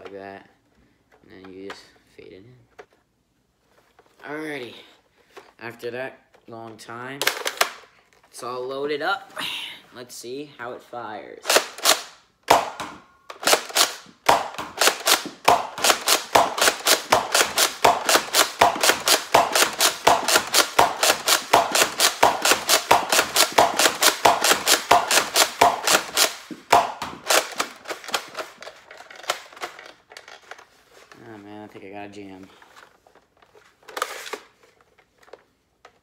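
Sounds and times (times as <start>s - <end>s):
toy blaster pumped and fired: 11.4s - 28.6s.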